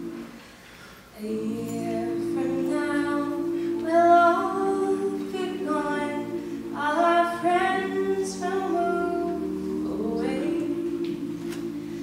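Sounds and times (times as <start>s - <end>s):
backing vocal harmonies: 0.0s - 12.0s
woman singing lead melody: 1.2s - 12.0s.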